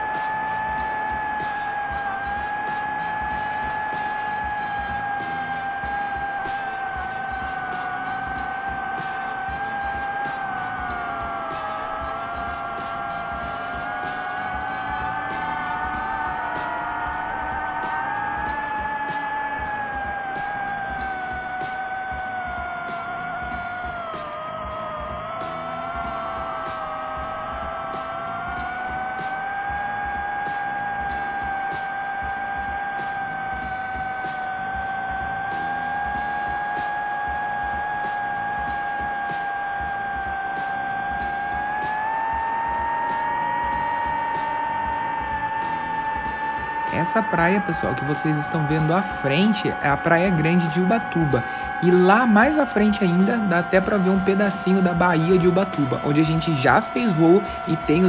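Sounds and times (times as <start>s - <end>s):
background music: 0.0s - 58.0s
drone propellers whining: 0.0s - 58.0s.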